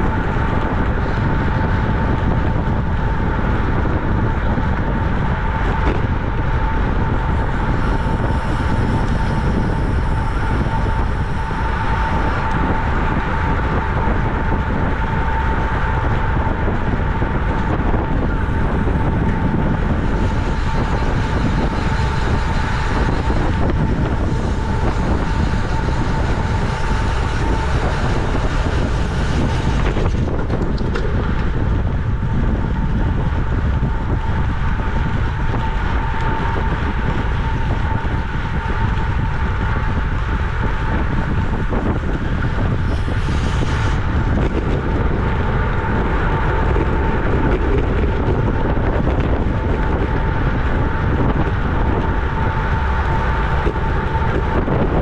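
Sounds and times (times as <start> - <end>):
tyre and road noise: 0.0 - 55.0
wind rushing over microphone: 0.0 - 55.0.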